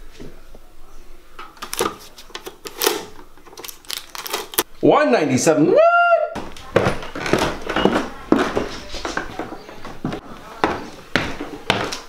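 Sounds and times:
paper tickets clicking and tearing: 1.6 - 4.6.

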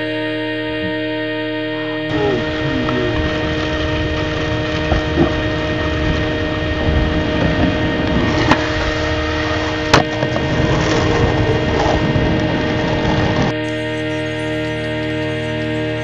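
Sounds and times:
steady droning tone: 0.0 - 16.0
skateboard wheels rolling on asphalt: 3.2 - 13.6
skateboard clacks: 7.4 - 13.5.

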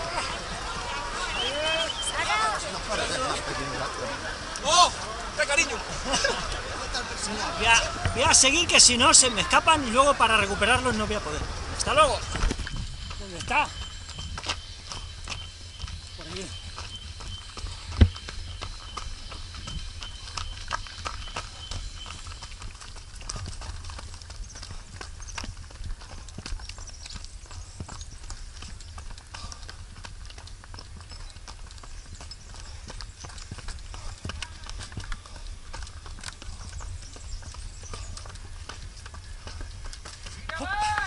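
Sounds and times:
running footsteps on stony trail: 0.0 - 41.0
wind rumble on microphone: 10.4 - 40.5.

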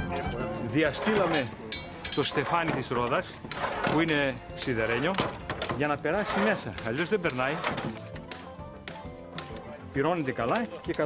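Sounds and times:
background music with held tones: 0.0 - 11.0
hammer striking iron tyre: 1.0 - 9.6.

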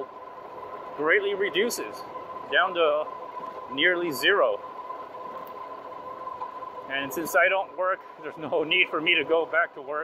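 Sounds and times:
electric hub motor whine: 0.0 - 10.0.

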